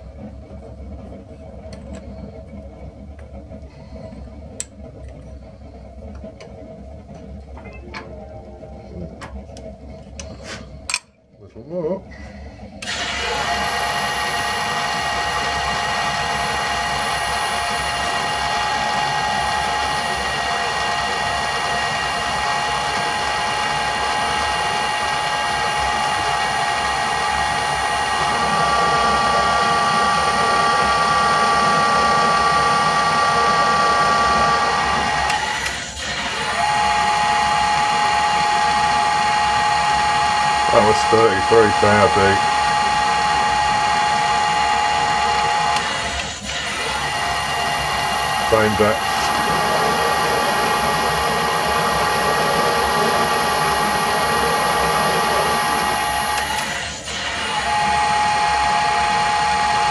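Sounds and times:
metal lathe whining: 12.0s - 59.9s.

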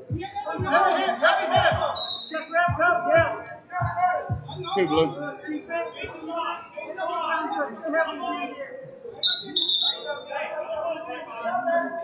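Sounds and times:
background music: 0.0s - 5.4s
indistinct voices calling out: 0.0s - 8.6s.

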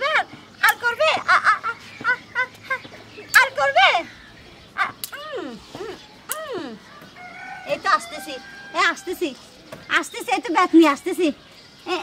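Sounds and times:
rooster crowing: 6.9s - 9.2s.

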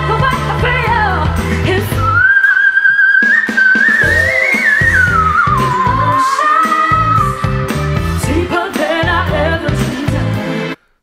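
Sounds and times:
live band backing: 0.0s - 10.8s.

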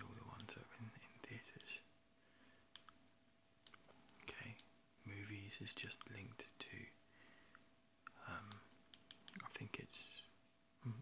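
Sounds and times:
person whispering: 0.0s - 1.9s, 4.2s - 7.0s, 8.1s - 8.7s, 9.3s - 11.0s
faint steady hum: 0.0s - 11.0s
soft clicks: 2.7s - 3.0s, 3.6s - 4.7s, 7.5s - 9.6s.

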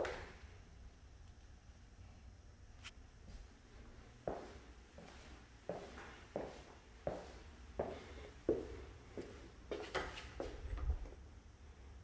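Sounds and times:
footsteps on plank floor: 4.3s - 10.6s.

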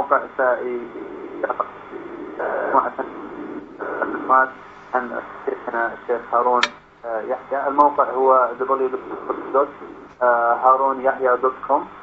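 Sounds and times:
man talking on radio: 2.4s - 3.2s, 3.9s - 11.9s.

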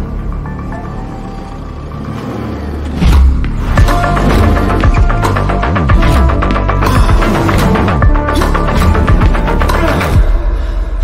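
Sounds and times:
car engine rumbling: 0.0s - 8.3s.

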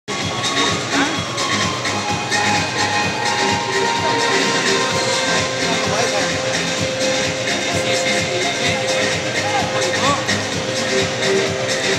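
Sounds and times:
crowd voices: 0.1s - 11.9s
music over public-address system: 0.1s - 11.9s
steady background din: 0.1s - 11.9s.

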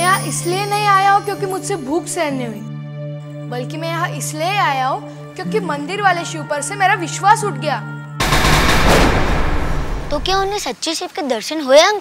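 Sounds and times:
dense rapid crackling: 8.2s - 10.7s.

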